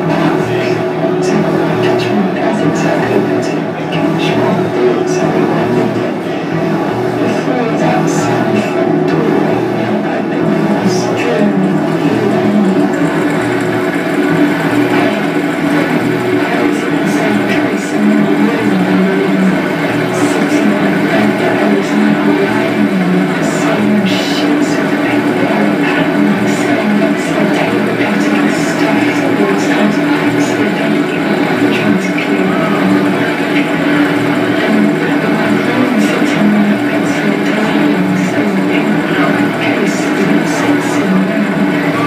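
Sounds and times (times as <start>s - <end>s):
droning wall of noise music: 0.0s - 42.0s.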